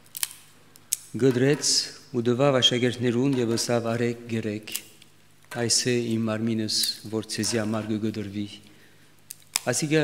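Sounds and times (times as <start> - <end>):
man speaking: 1.2 - 4.8, 5.5 - 8.6, 9.6 - 10.0.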